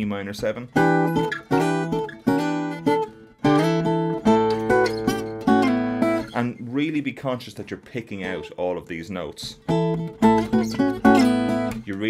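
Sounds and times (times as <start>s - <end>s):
acoustic guitar fingerpicking: 0.7s - 6.6s, 9.5s - 12.0s.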